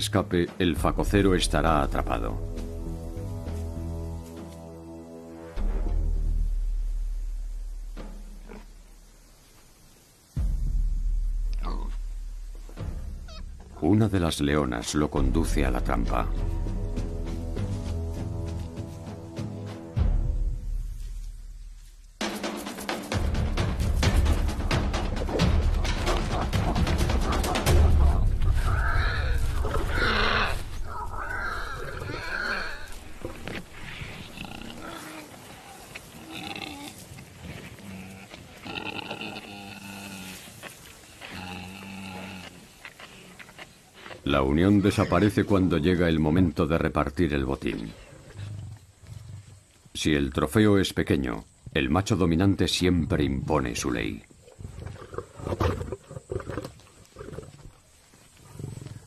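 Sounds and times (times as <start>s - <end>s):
warthog squealing in distress: 28.6s - 33.1s.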